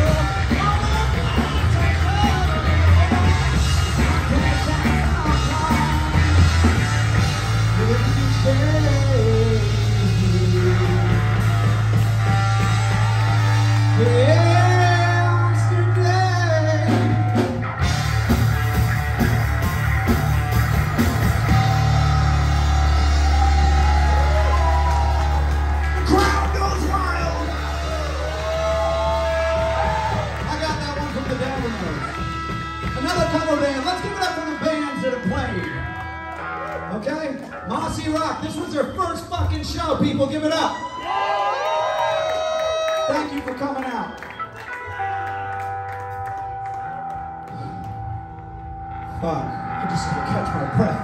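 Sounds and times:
person singing: 0.0 - 6.5, 7.7 - 11.8, 13.9 - 17.2
bass guitar low notes: 0.0 - 40.6, 44.5 - 51.0
live rock band playing: 0.0 - 51.0.

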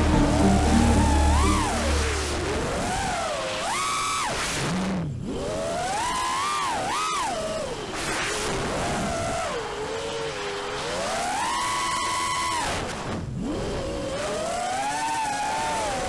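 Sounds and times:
background music: 0.0 - 2.7
quadcopter motors whining: 0.0 - 4.5, 5.2 - 16.0.

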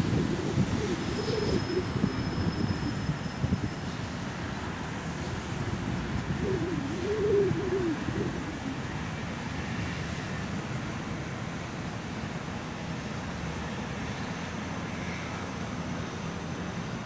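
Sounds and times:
pigeon cooing: 0.0 - 3.0, 6.2 - 9.0
distant traffic rumble: 0.0 - 17.0.

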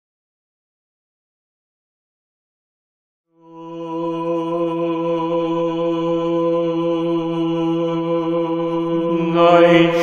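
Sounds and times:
man chanting low note: 4.0 - 10.0.

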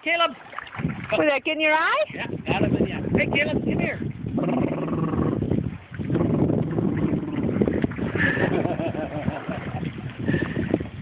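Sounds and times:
water sloshing and splashing: 0.0 - 11.0.

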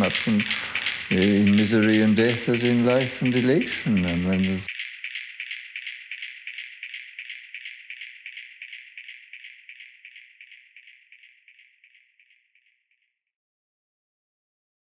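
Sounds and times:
shaker percussion loop: 0.0 - 13.1.

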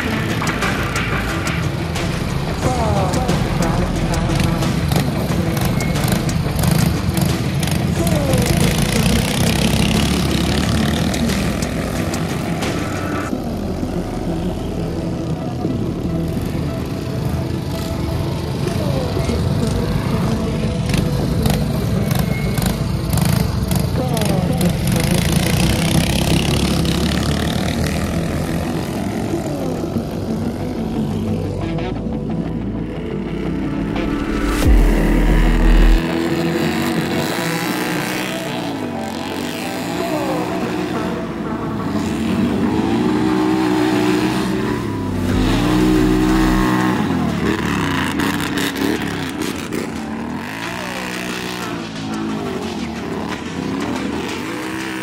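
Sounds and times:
atv engines revving: 0.0 - 55.0
small engines droning: 0.0 - 55.0
deep rumbles: 30.4 - 36.2, 45.2 - 46.9.

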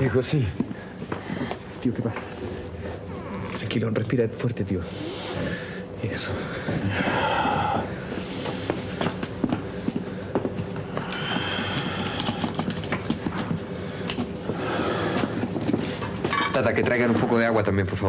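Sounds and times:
man gasping breathing: 4.9 - 9.0, 9.7 - 12.8.

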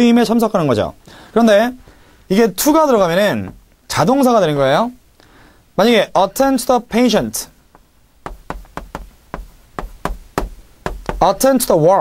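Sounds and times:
chalk tapping on chalkboard: 7.7 - 11.5.

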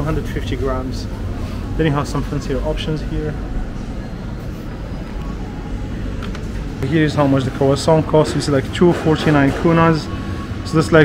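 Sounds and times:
supermarket room noise: 0.0 - 11.0.

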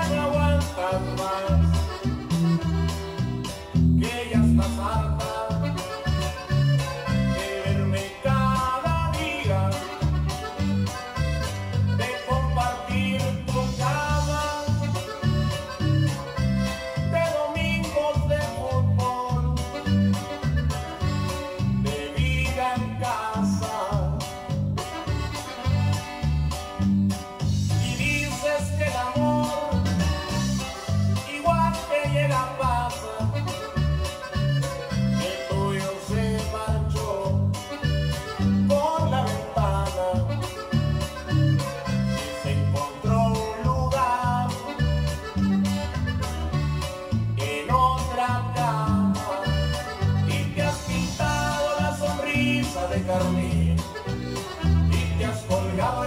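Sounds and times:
electric bass playing low notes: 0.0 - 56.0
latin-style backing track: 0.0 - 56.0.

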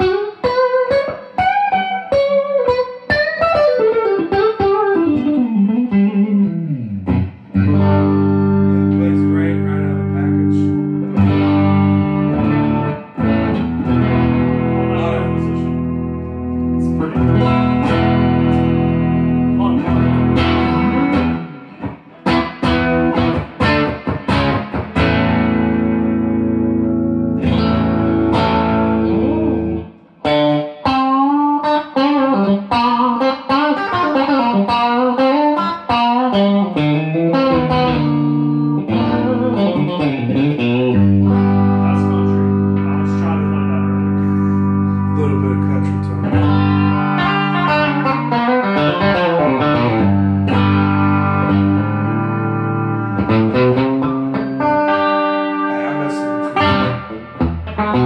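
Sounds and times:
electric guitar playing: 0.0 - 58.0.

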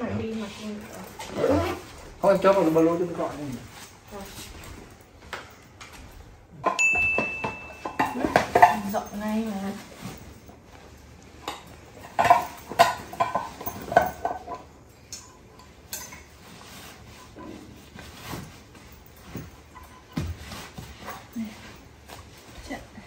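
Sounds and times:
crockery and cutlery clinking: 6.5 - 22.7.

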